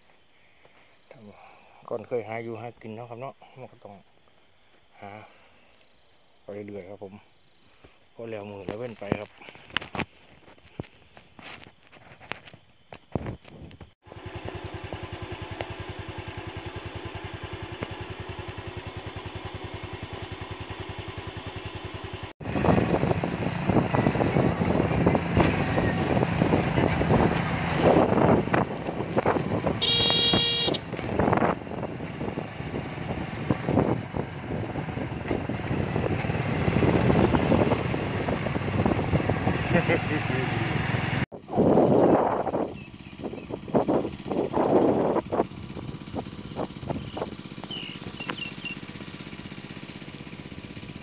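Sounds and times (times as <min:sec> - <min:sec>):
motorcycle engine running: 0:13.4 - 0:51.0
evenly pulsing engine-like sound: 0:14.1 - 0:51.0
wind rushing over microphone: 0:22.4 - 0:29.8, 0:30.8 - 0:39.9, 0:41.4 - 0:47.4
horn toot: 0:29.6 - 0:31.0.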